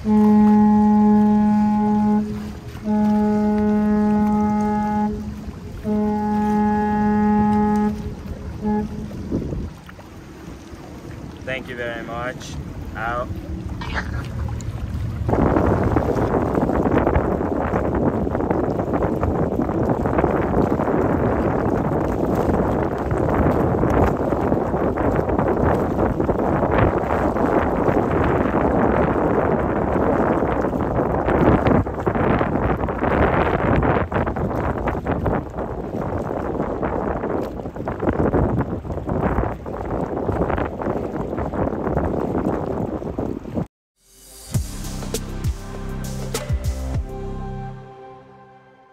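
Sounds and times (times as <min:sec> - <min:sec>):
wind buffeting microphone: 0:00.0 - 0:43.7
water and boat noise: 0:00.0 - 0:48.9.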